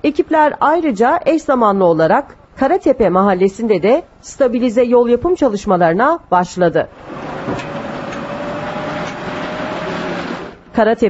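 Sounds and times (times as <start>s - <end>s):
diesel engine running: 6.9s - 10.7s.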